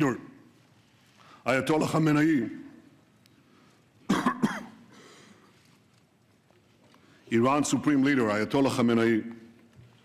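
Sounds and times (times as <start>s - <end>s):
man coughing: 4.1s - 5.2s.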